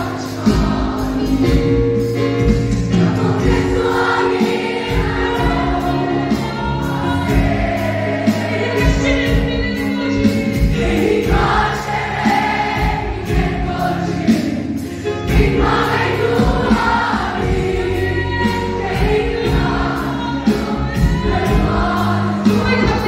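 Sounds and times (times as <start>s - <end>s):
young voices singing in chorus: 3.1s - 8.8s, 10.7s - 22.7s.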